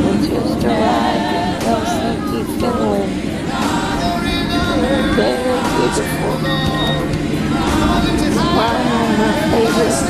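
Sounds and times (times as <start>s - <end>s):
group singing a cappella: 0.0s - 10.0s.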